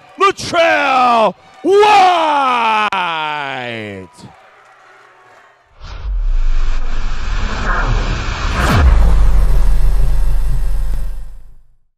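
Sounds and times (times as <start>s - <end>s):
deep bass rumble: 5.8s - 11.8s
loud low drone: 5.8s - 11.9s
whooshes: 5.8s - 11.9s.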